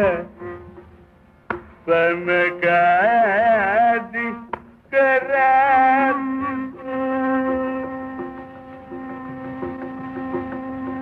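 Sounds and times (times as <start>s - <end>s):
classical concert melody: 1.8s - 11.0s.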